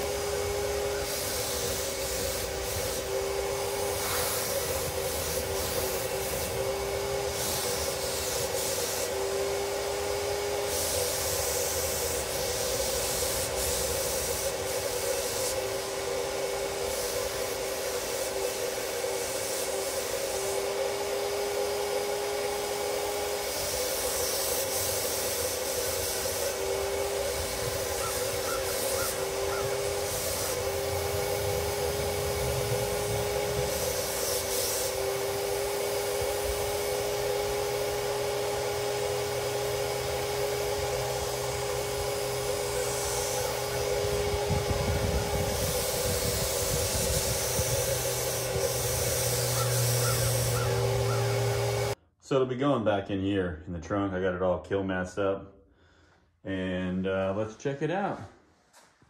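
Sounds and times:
spray gun hissing: 0.0 - 52.0
turbine whining: 0.0 - 52.0.

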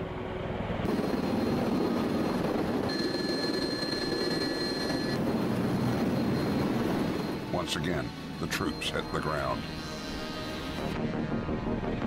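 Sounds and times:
tiltrotor aircraft rotors droning: 0.0 - 12.0
faint high whine: 0.9 - 11.0.

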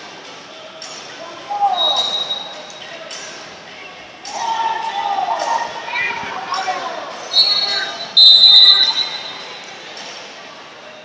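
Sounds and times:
echoing voices calling out: 0.5 - 9.9.

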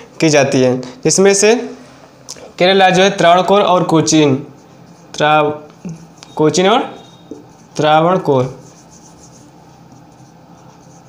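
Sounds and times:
marker scratching on whiteboard: 3.0 - 11.0.

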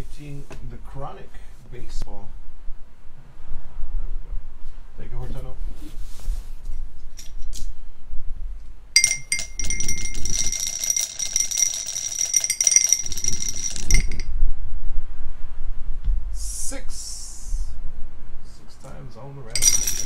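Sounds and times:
die rattling in a glass: 9.0 - 14.3, 19.5 - 20.0.

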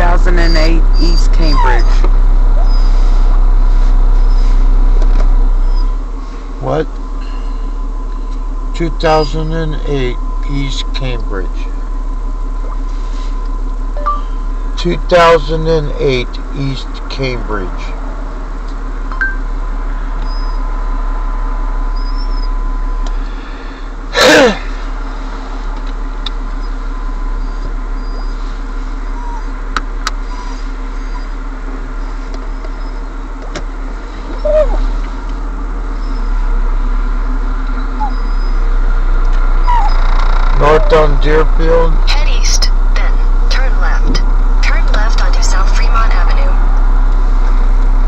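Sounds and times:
car running noise from inside: 0.0 - 48.0.

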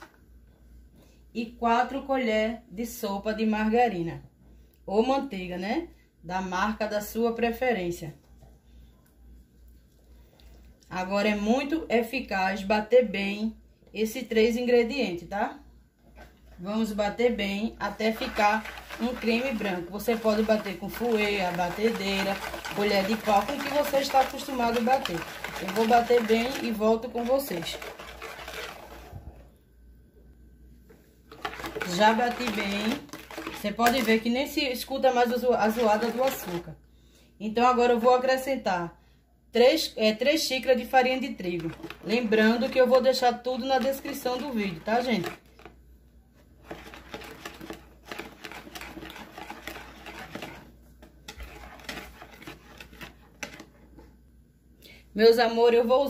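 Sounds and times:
whisk clicking and scraping bowl: 17.8 - 29.4, 31.3 - 36.8, 40.7 - 45.8, 46.6 - 54.0.

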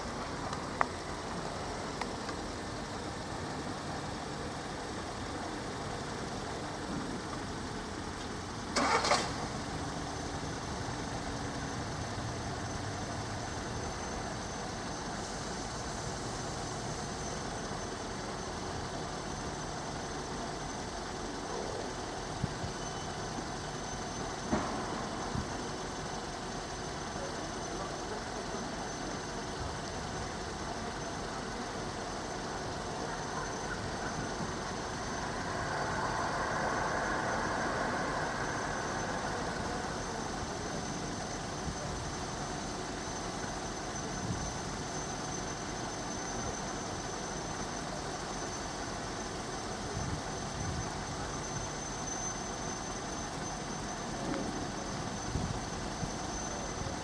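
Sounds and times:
faint high whine: 0.0 - 57.0
vehicle engine running: 0.0 - 57.0.

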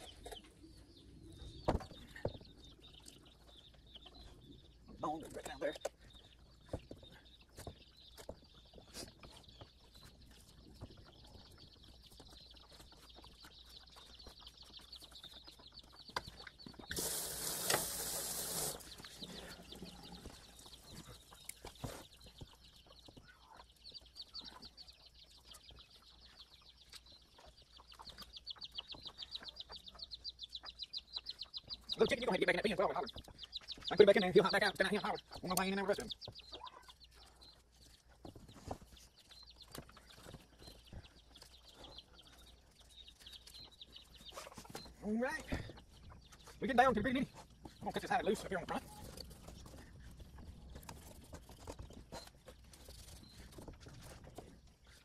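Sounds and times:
chickens clucking: 0.0 - 55.0.

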